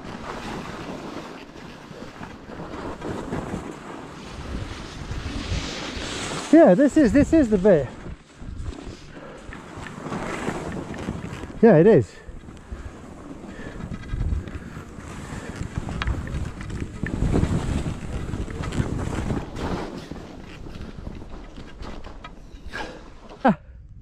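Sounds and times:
skis scraping over snow: 0:00.0 - 0:23.3
wind buffeting microphone: 0:00.0 - 0:24.0.

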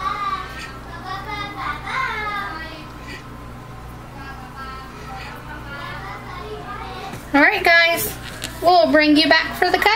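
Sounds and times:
steady low hum: 0:00.0 - 0:09.9
faint background voices: 0:00.1 - 0:07.4.

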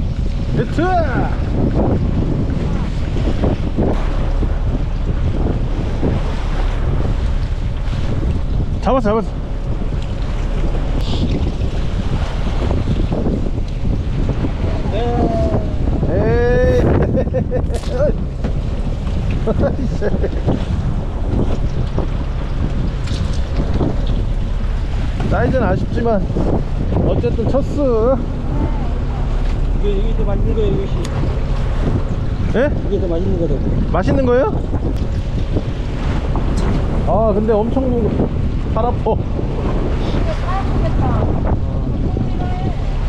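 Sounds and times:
choppy sea against hull: 0:00.0 - 0:43.0
steady low rumble: 0:00.0 - 0:43.0
wind buffeting microphone: 0:00.0 - 0:43.0.

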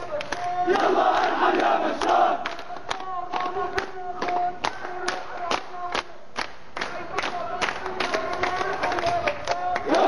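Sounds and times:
crowd chanting: 0:00.0 - 0:03.7, 0:09.1 - 0:10.0
crowd clapping in rhythm: 0:00.0 - 0:10.0.

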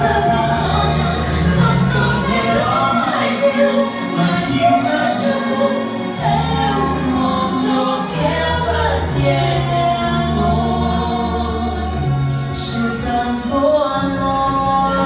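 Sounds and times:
man and woman singing duet: 0:00.0 - 0:15.0
musical accompaniment: 0:00.0 - 0:15.0.

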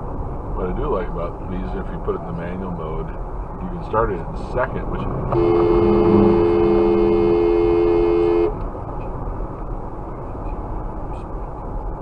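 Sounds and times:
road noise inside moving car: 0:00.0 - 0:12.0
two-tone car horn blast: 0:05.3 - 0:08.6.

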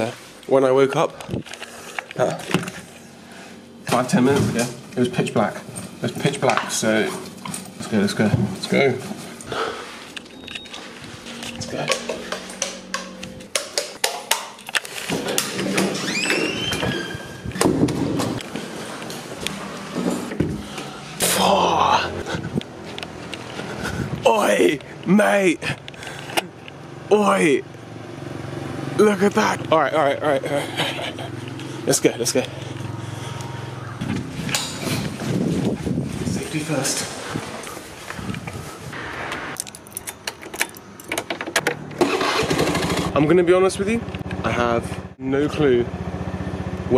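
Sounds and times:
door squeak: 0:15.2 - 0:18.4
keys jangling: 0:39.6 - 0:41.3.

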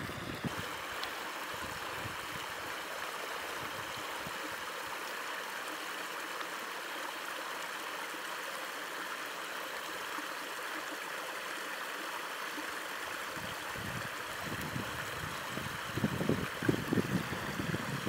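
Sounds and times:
creek running over rocks: 0:00.0 - 0:18.0.

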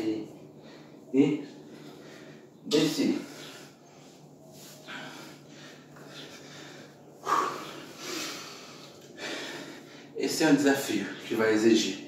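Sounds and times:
man breathing hard: 0:00.4 - 0:10.2.

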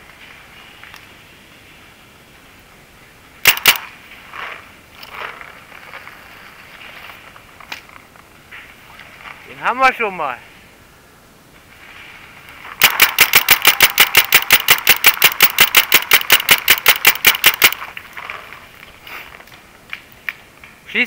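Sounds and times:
paintball marker firing rapidly: 0:03.4 - 0:03.9, 0:12.8 - 0:17.8.

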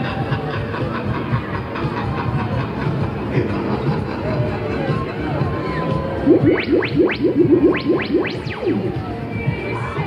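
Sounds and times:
fairground ride rumbling: 0:00.0 - 0:10.0
loud fairground music: 0:00.0 - 0:10.0.

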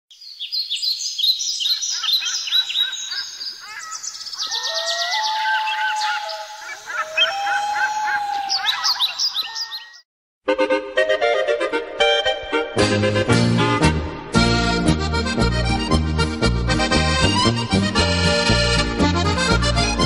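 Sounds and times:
birds chirping and singing: 0:00.2 - 0:10.0.

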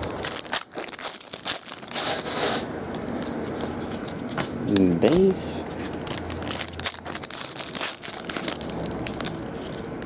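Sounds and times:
foil wrapper tearing and crinkling: 0:00.0 - 0:02.5, 0:05.8 - 0:09.9.

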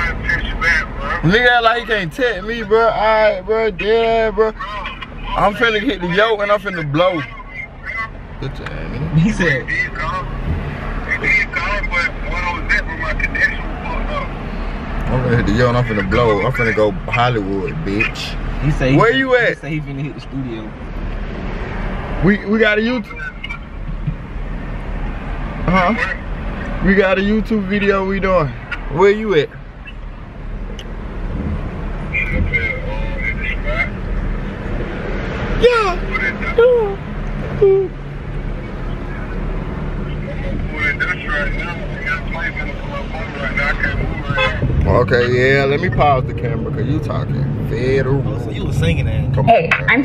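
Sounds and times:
car interior rumble: 0:00.0 - 0:50.0.

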